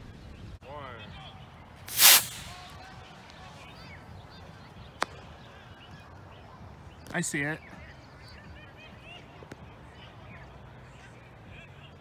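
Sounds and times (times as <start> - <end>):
birds chirping: 1.3 - 12.0.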